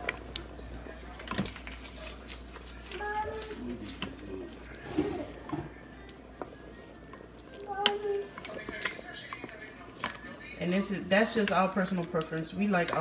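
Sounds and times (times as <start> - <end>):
wooden spoon stirring beans: 0.0 - 13.0.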